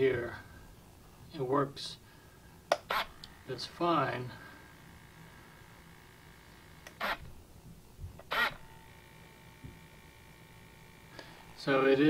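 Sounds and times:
servo whirring: 2.7s - 3.5s, 4.7s - 7.4s, 8.2s - 11.2s.

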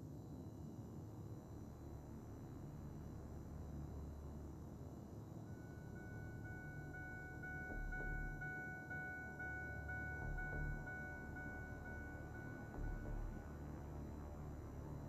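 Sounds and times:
car door warning chime: 5.5s - 13.4s
low rumble: 9.8s - 15.0s.

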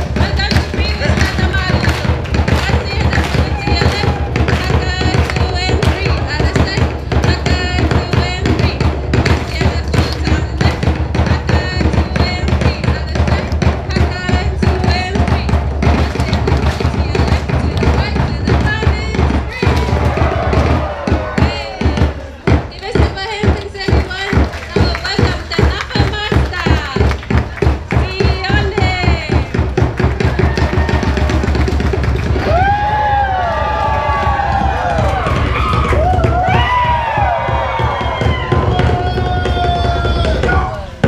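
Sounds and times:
voices: 0.0s - 29.6s
crowd clapping in rhythm: 0.0s - 41.0s
music: 0.0s - 41.0s.

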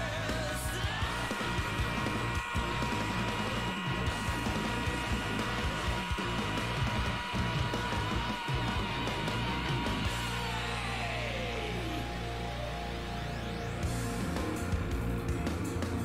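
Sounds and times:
busy drums: 0.0s - 11.0s, 13.8s - 16.0s
progressive rock song: 0.0s - 16.0s
long held high note: 0.8s - 13.7s.

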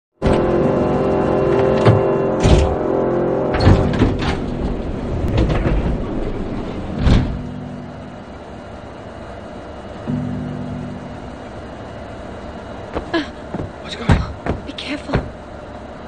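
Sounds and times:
train door mechanical clunks: 0.2s - 0.7s, 1.4s - 8.4s, 12.8s - 15.8s
low held tone: 0.2s - 13.9s
station ambience: 0.2s - 16.0s.

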